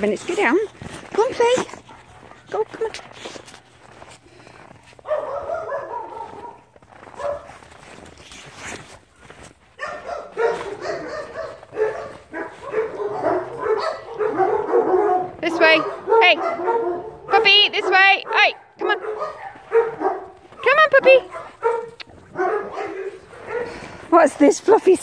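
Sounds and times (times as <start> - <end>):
dogs barking in play: 1.2 - 4.0, 4.8 - 24.2
dog yipping: 5.1 - 7.5, 9.8 - 17.4, 19.0 - 20.3, 21.3 - 23.8.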